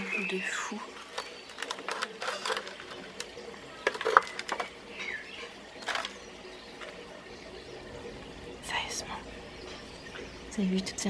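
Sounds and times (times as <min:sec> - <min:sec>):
soil crumbling: 0:00.9 - 0:07.1
tool clicking and scraping: 0:01.2 - 0:03.3.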